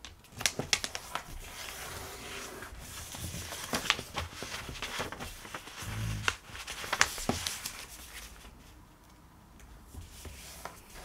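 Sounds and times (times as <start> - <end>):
paper crackling and rustling: 0.0 - 8.8, 10.0 - 11.0.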